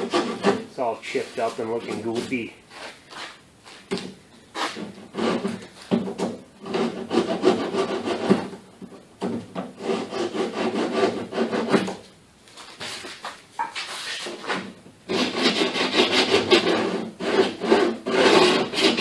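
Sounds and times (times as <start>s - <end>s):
hand file rasping on plastic: 0.0s - 0.7s, 4.6s - 5.7s, 6.6s - 8.5s, 9.8s - 11.9s, 15.1s - 19.0s.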